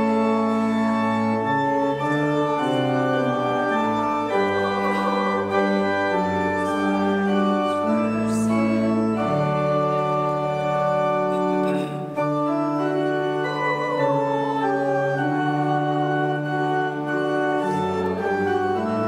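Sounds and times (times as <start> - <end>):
church organ playing hymn: 0.0 - 19.0.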